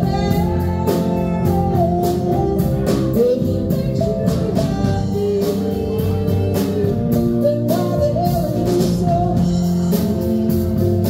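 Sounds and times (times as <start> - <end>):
drum kit beat: 0.0 - 11.0
electric guitar: 0.0 - 11.0
upright bass: 0.0 - 11.0
woman singing: 0.0 - 11.0.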